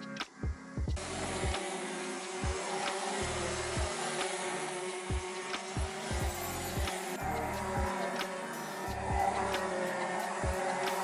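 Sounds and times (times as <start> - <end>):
background music with steady beat: 0.0 - 11.0
racing kart engines running: 1.0 - 11.0.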